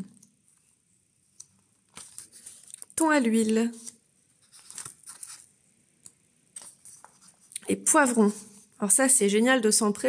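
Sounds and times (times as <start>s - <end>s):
book pages turning: 1.3s - 5.6s, 6.5s - 7.6s.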